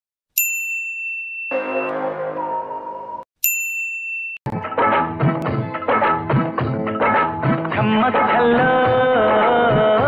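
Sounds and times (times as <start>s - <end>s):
bell-like ding: 0.4s - 2.0s, 3.4s - 4.4s
sustained musical tones: 1.5s - 3.2s.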